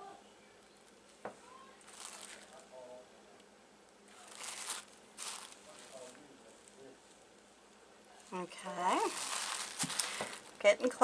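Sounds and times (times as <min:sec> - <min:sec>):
table covering rustling: 0:01.8 - 0:02.5, 0:04.2 - 0:06.8, 0:08.9 - 0:10.6.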